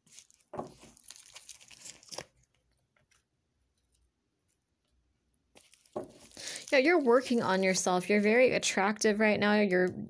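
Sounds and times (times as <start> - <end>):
cards being shuffled: 5.6 - 7.7.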